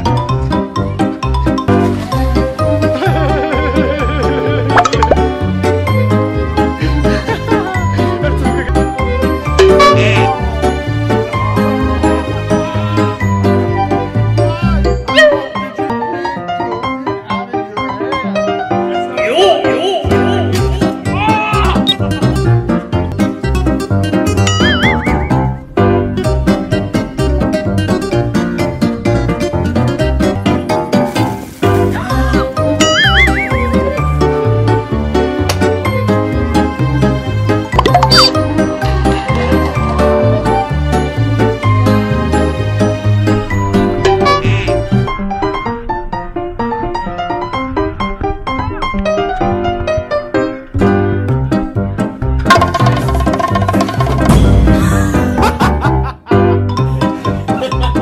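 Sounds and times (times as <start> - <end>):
upbeat background music: 0.0 - 16.1, 19.4 - 30.9, 31.9 - 45.0, 51.3 - 58.0
cartoon pop sound effect: 4.8 - 5.3, 24.4 - 25.5, 32.8 - 33.6, 37.8 - 38.5.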